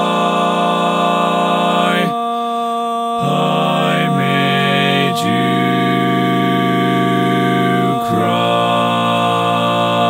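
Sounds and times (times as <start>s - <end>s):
barbershop a cappella harmony: 0.0s - 10.0s.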